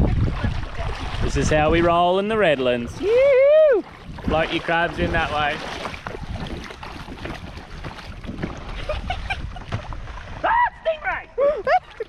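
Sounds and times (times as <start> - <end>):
wind noise on microphone: 0.0 - 11.9
footsteps wading through water: 0.0 - 12.0.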